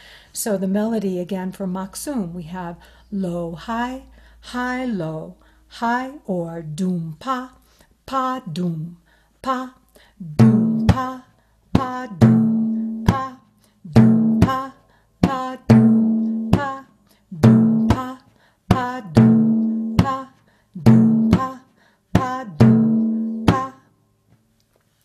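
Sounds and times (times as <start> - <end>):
frame drum deep strokes: 12.2 - 13.3, 13.9 - 16.8, 17.4 - 18.1, 18.7 - 20.2, 20.8 - 21.6, 22.2 - 23.8.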